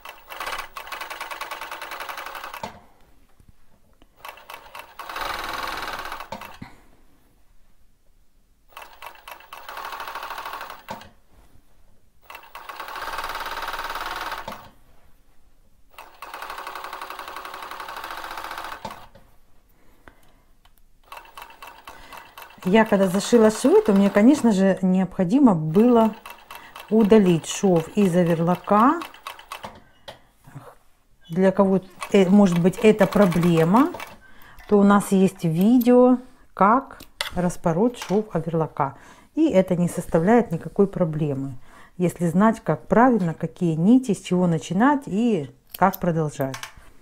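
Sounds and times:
overlocker sewing machine running: 0:00.0 - 0:02.7, 0:04.2 - 0:06.6, 0:08.7 - 0:11.1, 0:12.2 - 0:14.7, 0:15.9 - 0:19.1, 0:21.0 - 0:24.4, 0:25.7 - 0:29.8, 0:32.0 - 0:34.2.

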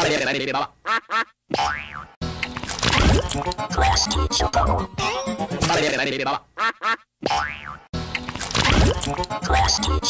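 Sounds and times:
boing sound effect: 0:01.5 - 0:02.1, 0:07.2 - 0:07.9.

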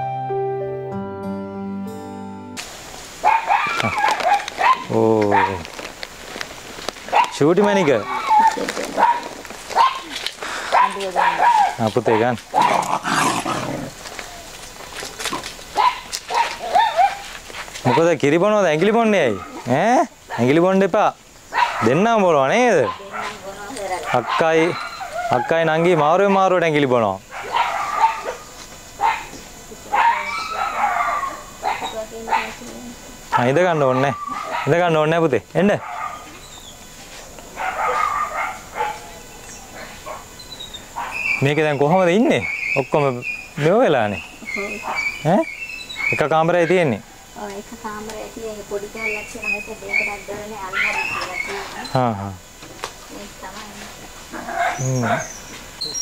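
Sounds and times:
soft piano music: 0:00.0 - 0:02.6
dog barking: 0:03.2 - 0:05.6, 0:07.1 - 0:13.7, 0:15.8 - 0:17.3, 0:19.3 - 0:19.7, 0:21.5 - 0:22.0, 0:22.7 - 0:25.6, 0:27.3 - 0:32.7, 0:33.3 - 0:34.9, 0:35.8 - 0:36.4, 0:37.5 - 0:40.3, 0:40.9 - 0:41.4, 0:44.7 - 0:45.2, 0:46.6 - 0:47.2, 0:50.7 - 0:51.7, 0:54.3 - 0:55.3.

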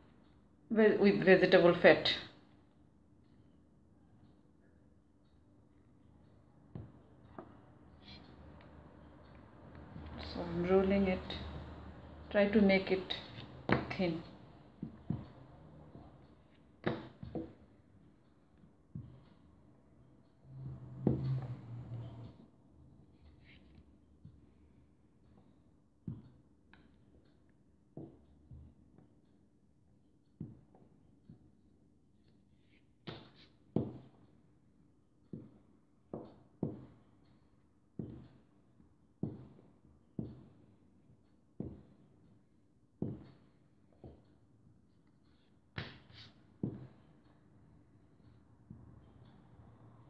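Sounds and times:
rolling pin rolling fondant: 0:12.4 - 0:16.2, 0:16.8 - 0:17.7, 0:20.5 - 0:22.3, 0:33.1 - 0:34.2, 0:39.2 - 0:39.6.

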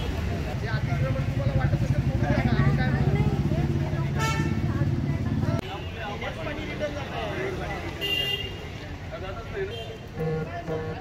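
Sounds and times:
car horn toot: 0:08.0 - 0:08.6.

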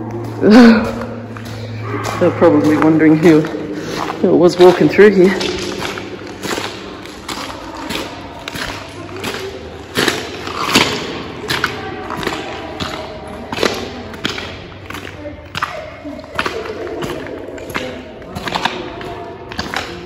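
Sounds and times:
footsteps on wet muddy floor: 0:00.0 - 0:20.0.

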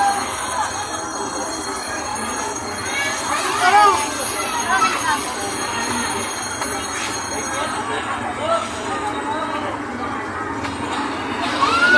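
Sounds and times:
people's voices: 0:00.0 - 0:11.9.

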